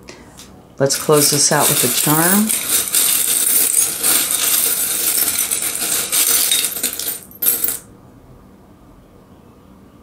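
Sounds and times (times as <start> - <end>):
metal charms jingling: 0.9 - 7.8.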